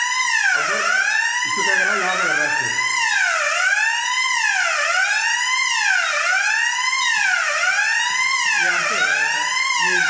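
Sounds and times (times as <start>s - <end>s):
fire alarm wailing: 0.0s - 10.0s.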